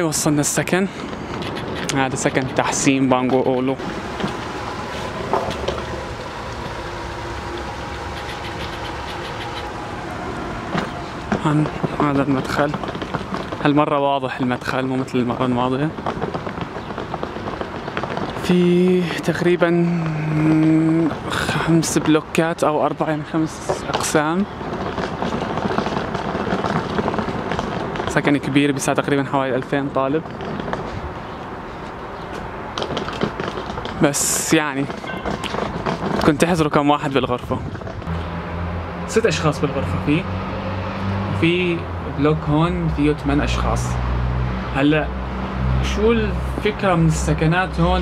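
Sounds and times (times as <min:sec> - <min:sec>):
wind on microphone: 0:00.0 - 0:13.8, 0:30.2 - 0:38.3
low rumble: 0:02.1 - 0:18.6.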